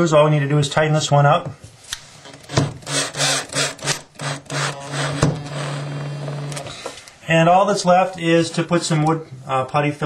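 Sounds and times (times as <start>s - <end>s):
drill driving screw into wood: 2.2s - 6.7s.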